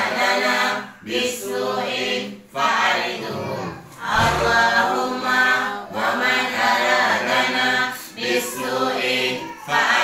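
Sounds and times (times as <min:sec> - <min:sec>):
voices chanting a prayer: 0:00.0 - 0:10.0.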